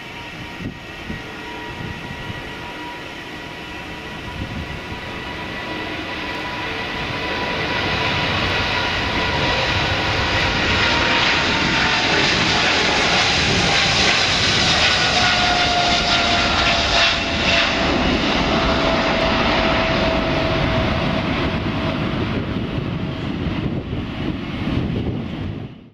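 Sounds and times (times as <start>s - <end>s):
jet engines at takeoff thrust: 0.0s - 25.9s.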